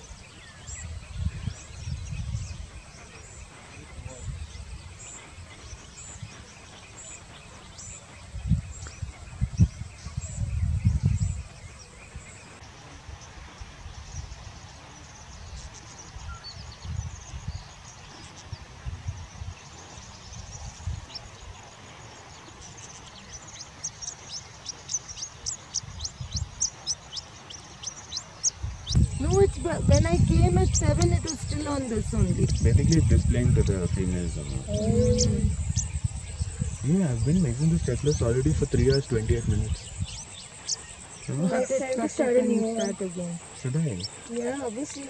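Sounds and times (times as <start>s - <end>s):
high falling bird chirps: 22.6s - 45.0s
low rumble: 28.7s - 40.2s.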